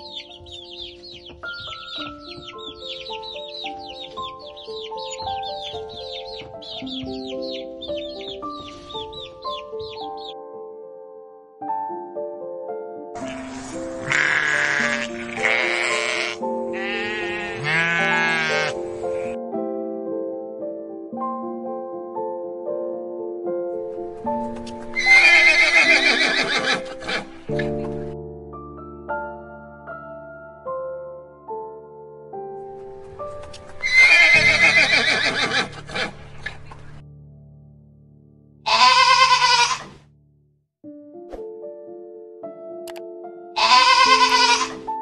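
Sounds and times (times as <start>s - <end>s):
soft piano music: 0.0s - 45.0s
horse whinnying: 14.0s - 19.4s, 25.0s - 27.3s, 33.8s - 36.6s, 38.7s - 39.9s, 43.6s - 44.8s
sheep bleating: 14.0s - 19.4s, 38.7s - 39.9s, 43.6s - 44.8s.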